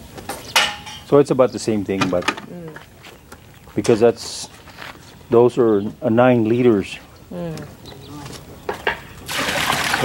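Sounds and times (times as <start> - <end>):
water pouring from bucket: 9.2 - 10.0.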